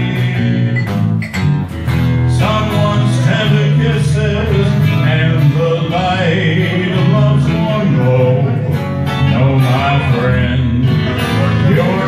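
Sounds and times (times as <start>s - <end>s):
guitars playing: 0.0s - 12.0s
steady bass line: 0.0s - 12.0s.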